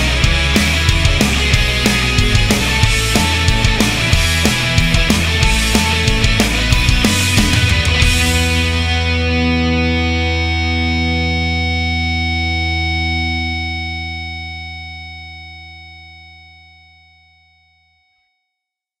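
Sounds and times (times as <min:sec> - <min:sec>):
distorted electric guitar chord: 0:00.0 - 0:16.1.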